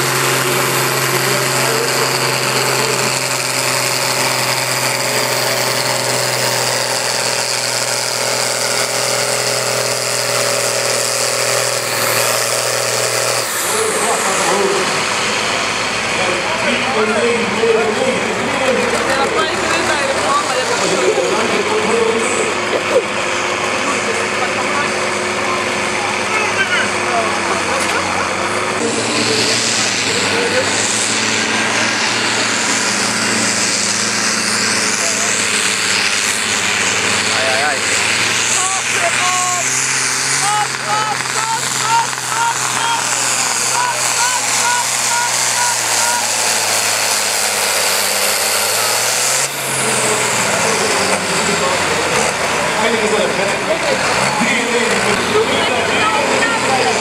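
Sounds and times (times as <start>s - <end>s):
tractor diesel engine at full throttle: 0.0s - 57.0s.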